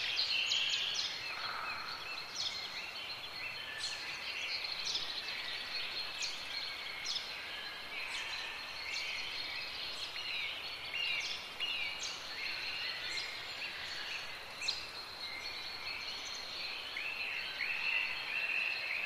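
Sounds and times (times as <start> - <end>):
background hiss: 0.0 - 19.0
birds chirping: 0.0 - 19.0.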